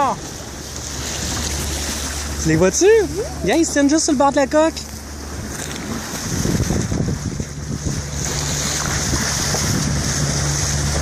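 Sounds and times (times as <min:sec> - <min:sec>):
water rushing along boat hull: 0:00.0 - 0:11.0
steady low hum: 0:00.2 - 0:11.0
wind on microphone: 0:05.2 - 0:11.0.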